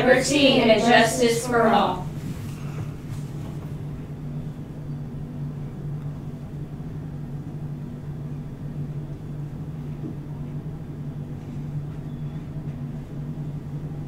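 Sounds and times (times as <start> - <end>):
steady low room hum: 0.0 - 14.0.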